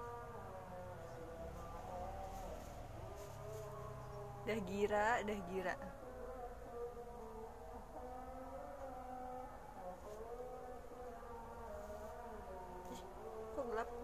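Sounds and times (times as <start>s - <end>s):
woman humming softly: 12.8s - 14.0s.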